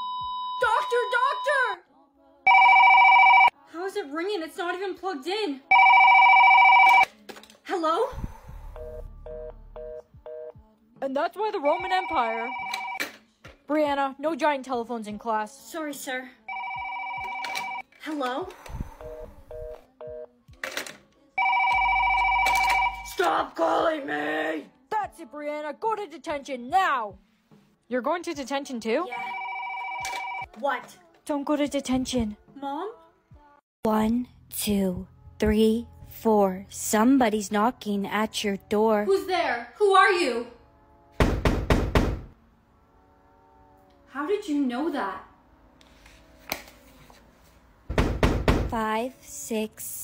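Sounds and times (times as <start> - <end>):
paired-tone telephone beeps: 2.5 - 3.5, 5.7 - 7.0, 11.8 - 13.0, 16.5 - 17.8, 19.0 - 20.3
telephone ringing: 2.5 - 3.6, 5.7 - 7.1, 11.6 - 13.0, 16.5 - 17.9, 21.4 - 23.2, 29.1 - 30.5
knocks on a door: 41.2 - 42.3, 47.9 - 48.8.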